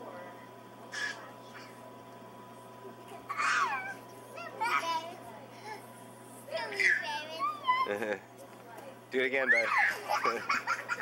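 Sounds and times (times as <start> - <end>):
steady low hum: 0.0 - 11.0
toddlers squealing: 3.3 - 4.0, 6.8 - 8.0, 9.4 - 10.3.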